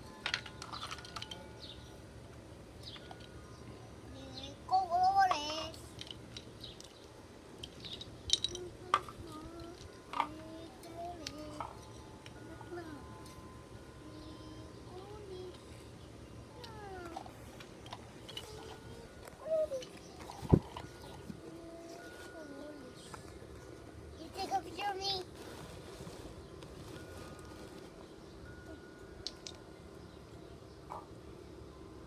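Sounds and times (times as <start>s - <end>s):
outdoor background noise: 0.0s - 32.0s.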